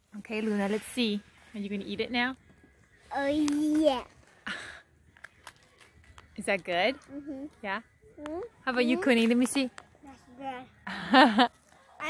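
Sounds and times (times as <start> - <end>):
cracker crunching: 5.1 - 6.4.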